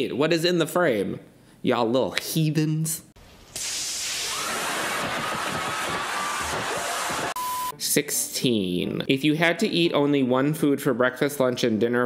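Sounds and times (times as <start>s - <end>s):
water spraying from garden hose: 3.5s - 4.5s.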